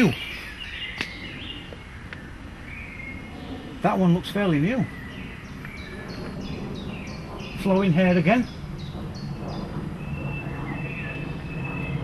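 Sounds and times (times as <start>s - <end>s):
steady rushing noise: 0.0s - 12.0s.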